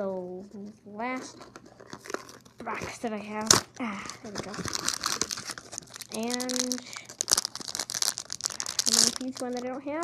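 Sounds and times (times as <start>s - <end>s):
foil packet crinkling and tearing: 1.4s - 10.0s.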